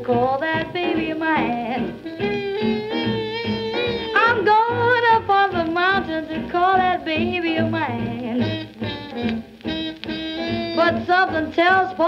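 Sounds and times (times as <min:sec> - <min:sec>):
big band swing music record: 0:00.0 - 0:12.0.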